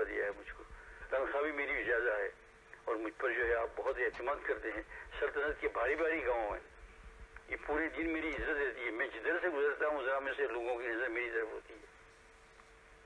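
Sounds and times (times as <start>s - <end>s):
man preaching: 0.0s - 6.6s, 7.5s - 11.8s.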